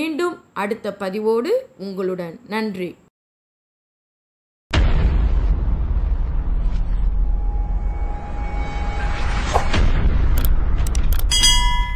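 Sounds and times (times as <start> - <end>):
boom and deep rumble: 4.7 - 11.2.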